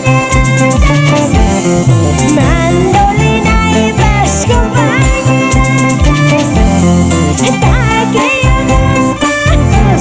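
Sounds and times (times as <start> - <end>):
bass: 0.0 - 10.0
strummed and plucked guitars: 0.0 - 10.0
woman singing: 0.0 - 10.0.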